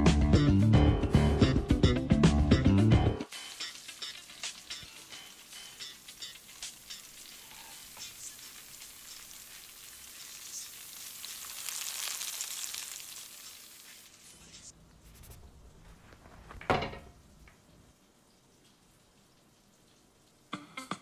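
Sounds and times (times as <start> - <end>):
food sizzling in frying pan: 3.3 - 14.7.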